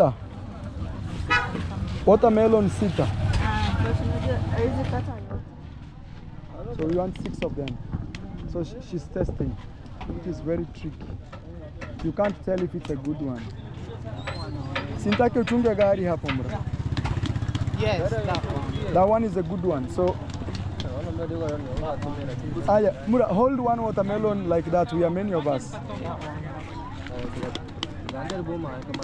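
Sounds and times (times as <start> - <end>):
people talking: 6.5 - 16.7, 17.8 - 29.0.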